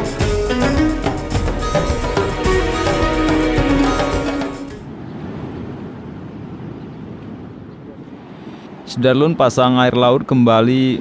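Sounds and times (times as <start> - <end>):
sea surf: 0.0 - 9.5.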